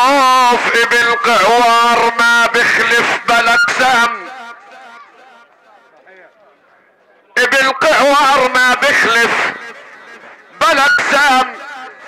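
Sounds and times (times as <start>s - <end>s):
man singing through loudspeakers: 0.0s - 5.1s, 7.4s - 12.0s.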